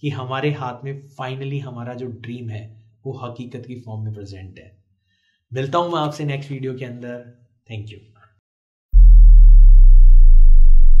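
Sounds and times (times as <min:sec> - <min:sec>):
deep synthesized tone falling in pitch: 0:09.0 - 0:11.0.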